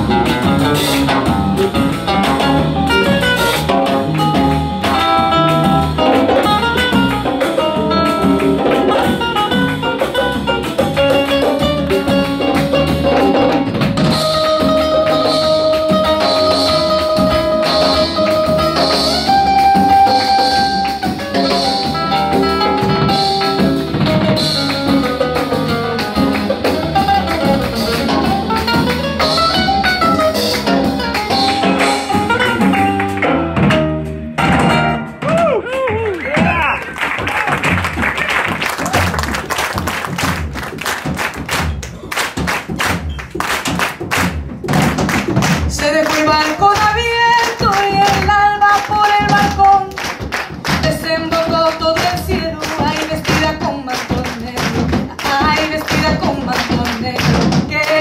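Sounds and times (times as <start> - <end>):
rhythmic hand-clapping: 0.0 - 33.9, 35.3 - 58.0
drum percussion: 0.0 - 58.0
electric bass: 0.0 - 58.0
nylon-string guitar solo: 26.0 - 36.5.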